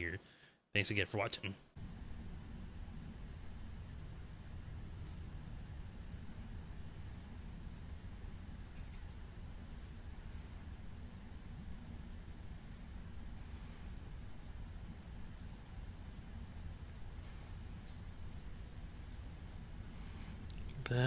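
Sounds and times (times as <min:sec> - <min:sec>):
insects trilling: 0:01.8 - 0:21.0.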